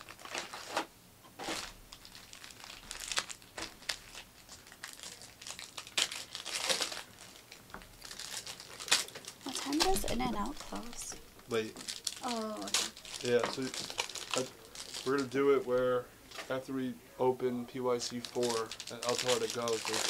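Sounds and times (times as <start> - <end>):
plastic wrapping crinkling: 0.0 - 15.7, 17.8 - 20.0.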